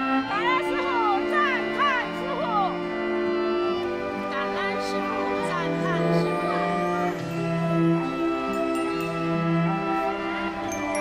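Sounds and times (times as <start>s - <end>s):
high sliding melody line: 0.0s - 11.0s
sustained string chords: 0.0s - 11.0s.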